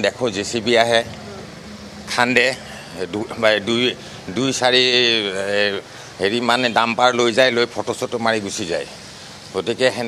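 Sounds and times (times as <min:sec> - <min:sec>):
man speaking: 0:00.0 - 0:10.0
street background noise: 0:00.0 - 0:10.0.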